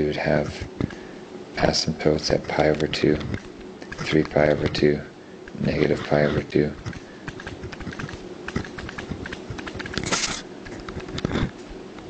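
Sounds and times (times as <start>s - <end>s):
pen tapping and scratching on paper: 2.6s - 4.8s, 6.8s - 11.5s.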